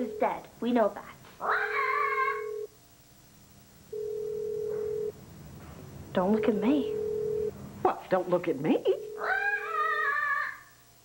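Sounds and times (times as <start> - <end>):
telephone line tone: 0.0 - 0.4, 1.6 - 2.7, 3.9 - 5.2, 6.3 - 7.6, 8.8 - 10.0
shrill cry: 1.4 - 2.5, 9.2 - 10.8.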